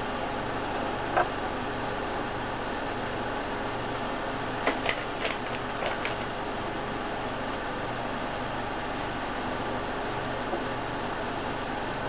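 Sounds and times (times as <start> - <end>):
background hum: 0.0 - 12.0.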